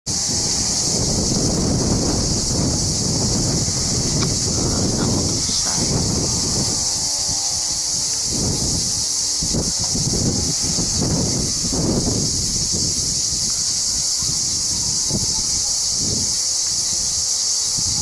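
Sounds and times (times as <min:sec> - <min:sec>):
steady high hiss: 0:00.1 - 0:18.0
wind buffeting microphone: 0:00.1 - 0:18.0.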